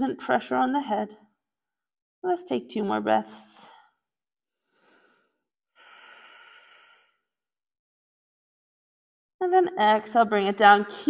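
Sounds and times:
woman breathing: 4.6 - 7.4.

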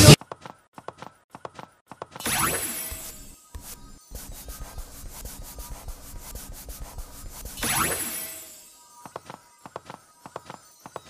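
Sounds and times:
pen scribbling on paper: 2.9 - 8.2.

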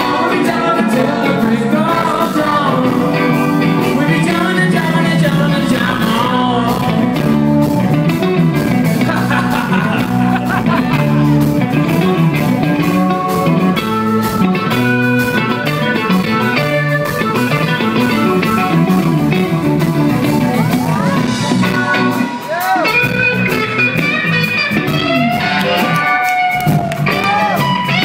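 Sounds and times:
electric guitar with string bends: 0.0 - 28.0
repeating bass line: 0.0 - 28.0
steady drum beat: 0.0 - 28.0.

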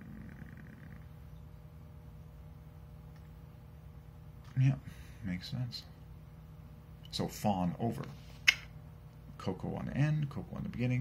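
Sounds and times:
faint room hum: 0.0 - 11.0.

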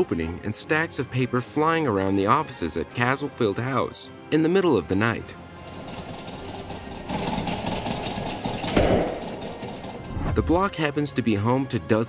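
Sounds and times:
door rattling in its frame: 5.6 - 10.8.

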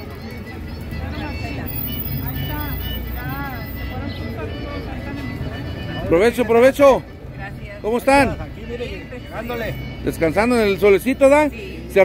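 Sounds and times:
faint music: 0.0 - 12.0
faint voices: 0.0 - 12.0.

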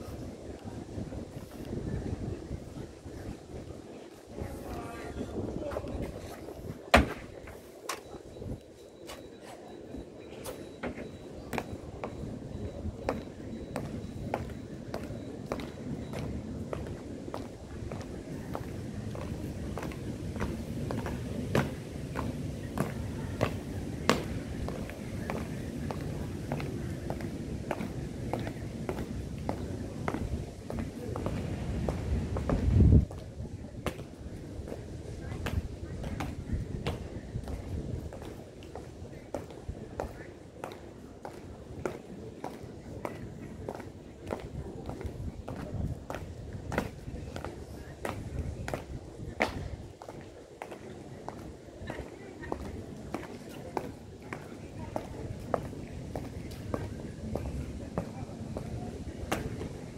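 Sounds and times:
boot stamp: 6.9 - 7.3
boots marching on stone: 10.9 - 59.8.

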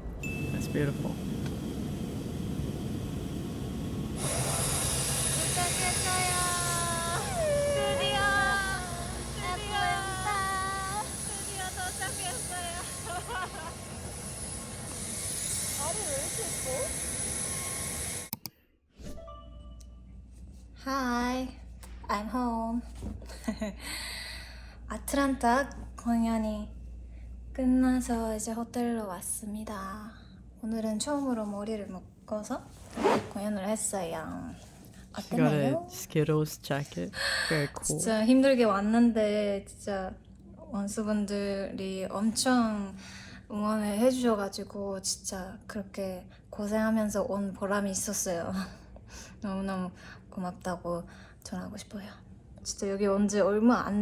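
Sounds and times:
low background hum: 0.0 - 18.3, 19.4 - 54.0
woman speaking: 5.4 - 13.5, 15.8 - 17.0, 33.3 - 36.2, 37.3 - 48.6
woman's long high call: 5.9 - 13.0
jacket zipper rasp: 32.8 - 33.6.

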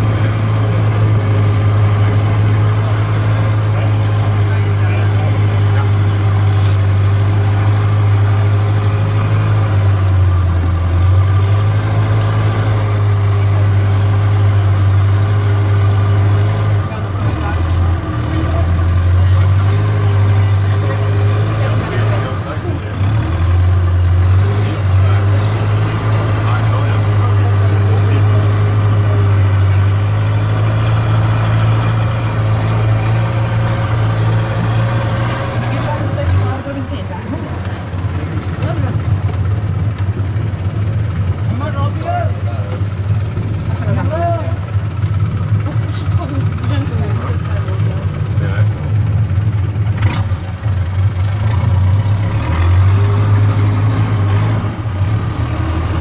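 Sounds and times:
boat engine running: 0.0 - 56.0.

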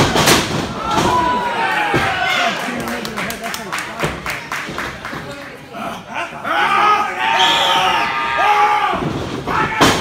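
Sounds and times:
people shouting: 6.1 - 10.0.

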